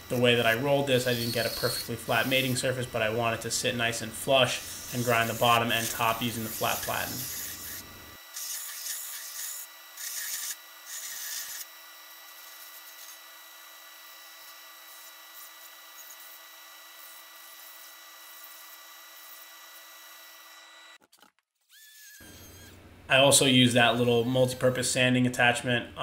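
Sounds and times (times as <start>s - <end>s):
belt running with hiss and whine: 0.0s - 11.7s
belt grinder grinding steel: 0.0s - 21.0s, 21.6s - 22.8s.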